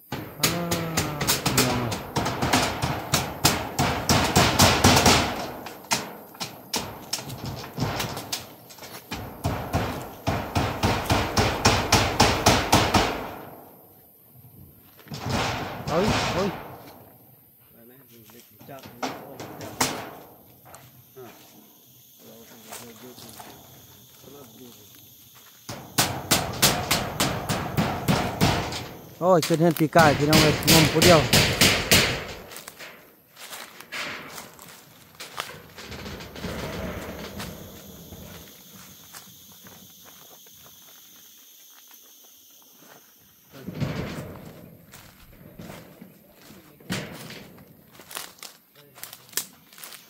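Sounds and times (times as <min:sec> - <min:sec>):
hammer on corrugated metal roof: 0:00.1 - 0:08.4, 0:09.1 - 0:13.6, 0:15.1 - 0:16.9, 0:18.9 - 0:20.4, 0:25.7 - 0:29.2, 0:29.9 - 0:32.7
faint voices: 0:00.4 - 0:02.1.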